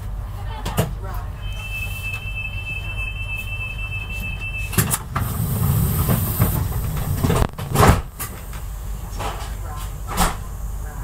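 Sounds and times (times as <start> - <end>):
train coach rumble: 4.0 - 10.6.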